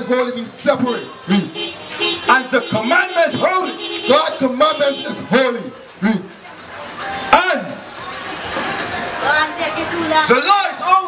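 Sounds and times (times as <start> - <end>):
heavy vehicle passing: 0.7 - 10.8.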